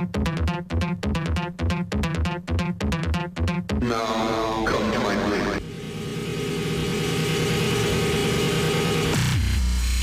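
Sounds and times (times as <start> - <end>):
droning synthesizer chord: 3.9 - 9.6.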